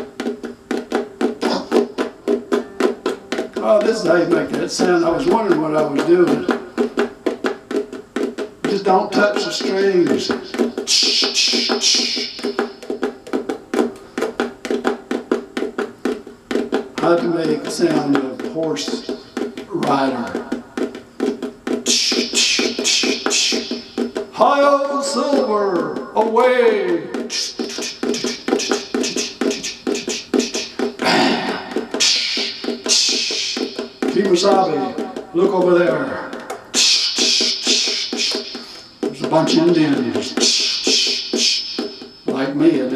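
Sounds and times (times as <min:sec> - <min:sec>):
hand tapping on ukulele body: 0:00.0 - 0:42.8
short hiss: 0:27.3 - 0:30.7, 0:31.9 - 0:33.9, 0:36.8 - 0:38.9.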